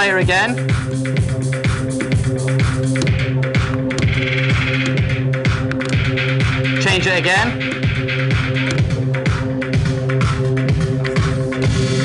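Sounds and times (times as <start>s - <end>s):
electronic dance music: 0.0s - 12.0s
kick drum: 0.7s - 6.8s, 7.6s - 12.0s.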